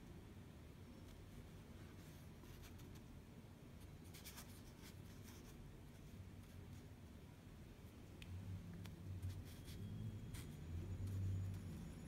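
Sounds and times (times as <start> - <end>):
ink brush scratching paper: 3.8 - 7.0, 9.0 - 12.0.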